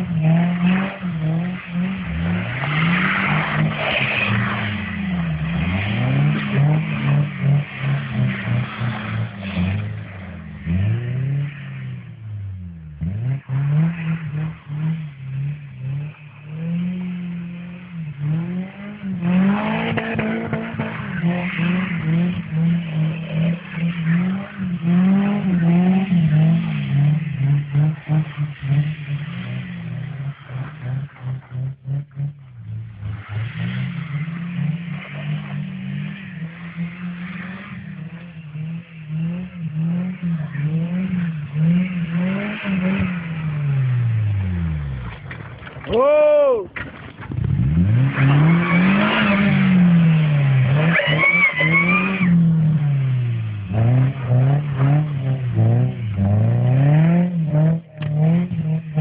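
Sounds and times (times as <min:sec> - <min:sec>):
car engine revving: 0:00.0 - 0:46.0, 0:46.7 - 0:59.0.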